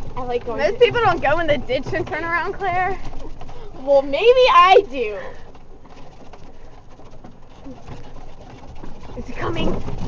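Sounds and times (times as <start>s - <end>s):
faint rattles: 0.0s - 10.0s
golf cart driving over grass: 0.0s - 10.0s.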